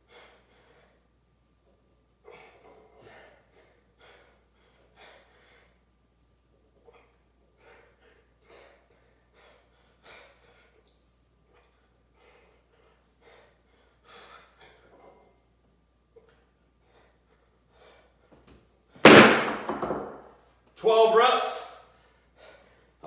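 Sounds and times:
man breathing sharply: 0.0 - 1.1, 2.3 - 5.9, 21.8 - 23.0.

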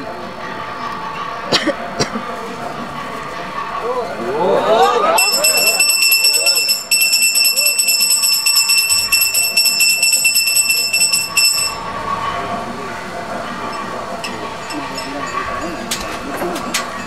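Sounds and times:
voices: 0.0 - 17.0
handbell ringing rapidly: 5.2 - 11.9, 13.7 - 16.2.

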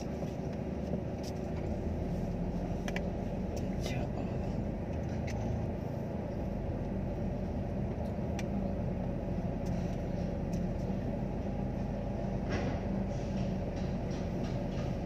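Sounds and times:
car engine and road rumble: 0.0 - 15.0.

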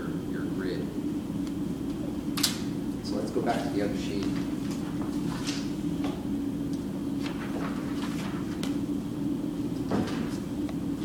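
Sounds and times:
steady low hum: 0.0 - 11.0
paper rustling: 7.2 - 8.8.

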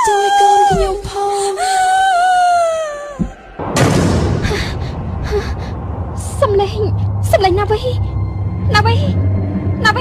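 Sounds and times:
steady low rumble: 3.1 - 10.0.

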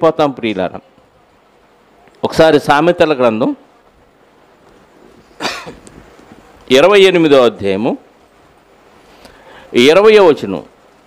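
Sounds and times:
man coughing: 5.4 - 5.8.

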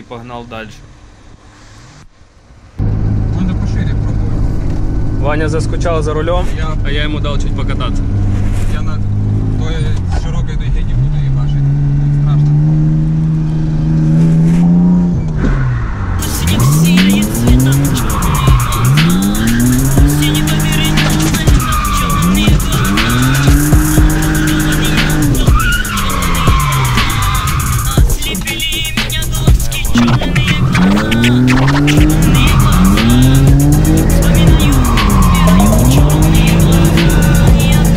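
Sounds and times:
car engine revving: 0.8 - 37.9
music: 16.2 - 37.9
tyre squeal: 16.6 - 28.0, 30.0 - 37.4.

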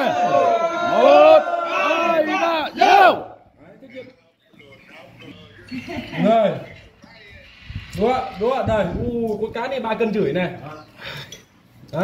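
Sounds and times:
group of men shouting: 0.0 - 3.4.

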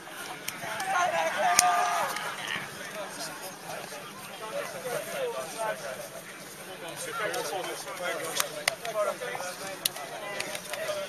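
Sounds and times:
distant crowd chatter: 0.0 - 11.0.

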